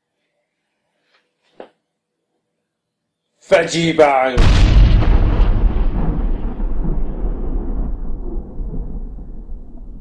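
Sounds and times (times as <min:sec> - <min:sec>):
deep rumbling boom impact: 0:04.4 - 0:10.0.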